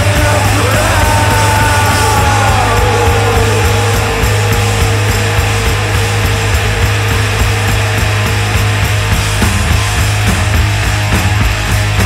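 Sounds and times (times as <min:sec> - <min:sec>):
distorted electric guitar: 0:00.0 - 0:12.0
low bass drone: 0:00.0 - 0:12.0.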